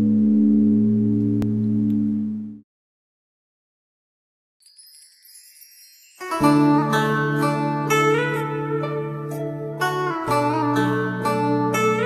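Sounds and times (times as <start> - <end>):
shimmering wind chimes: 4.6 - 8.4.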